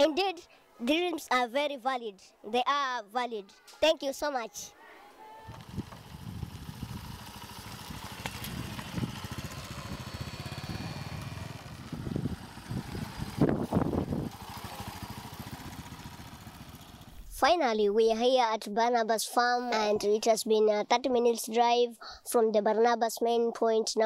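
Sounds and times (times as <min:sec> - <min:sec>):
small motorcycle engine running: 0:05.5 - 0:17.2.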